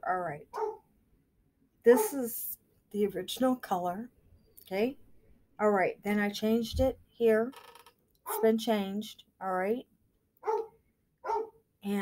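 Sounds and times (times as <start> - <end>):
dog barking: 0.5 - 0.8, 8.3 - 8.5, 10.4 - 11.6.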